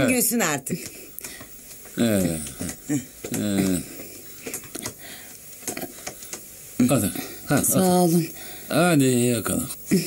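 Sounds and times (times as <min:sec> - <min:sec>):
person speaking: 0:01.9 - 0:04.1.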